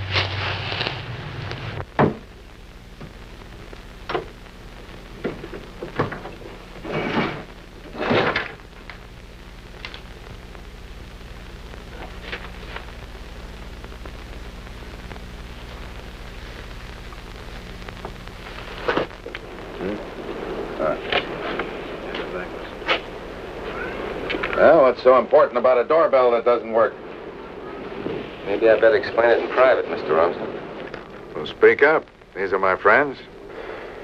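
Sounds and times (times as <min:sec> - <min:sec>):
steady low hum: 0:00.0 - 0:34.0
faint clicks: 0:09.7 - 0:10.7
indistinct voices: 0:18.9 - 0:33.9.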